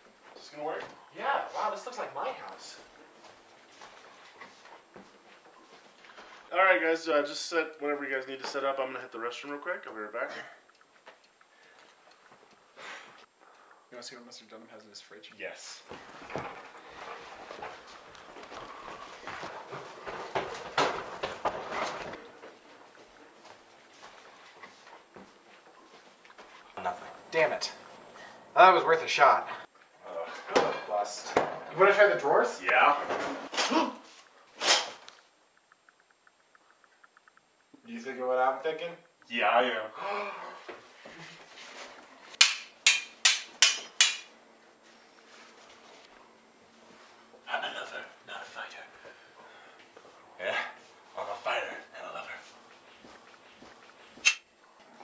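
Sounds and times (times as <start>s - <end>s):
footsteps on hard floor: 2.8s - 6.5s, 15.8s - 26.7s, 52.3s - 54.3s.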